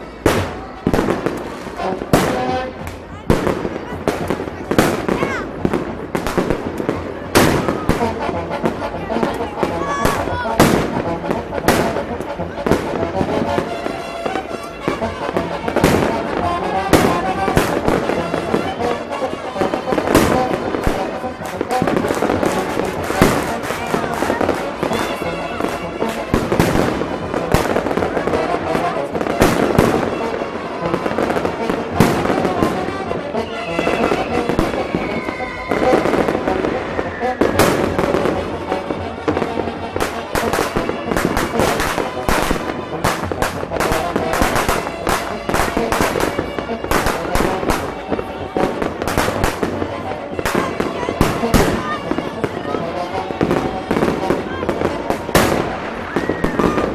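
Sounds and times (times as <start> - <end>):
fireworks bangs: 0.0 - 56.9.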